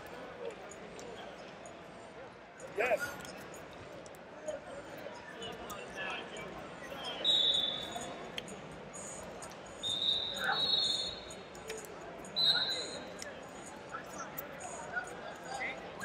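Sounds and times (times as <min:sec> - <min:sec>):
low arena chatter: 0:00.0 - 0:16.0.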